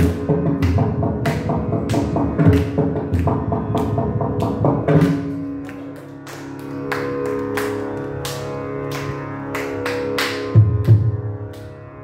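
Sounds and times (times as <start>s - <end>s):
steady drone: 0.0s - 12.0s.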